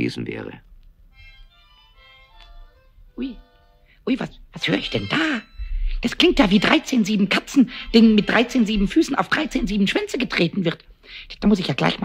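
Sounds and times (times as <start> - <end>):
child playing harmonica: 1.1 - 6.5.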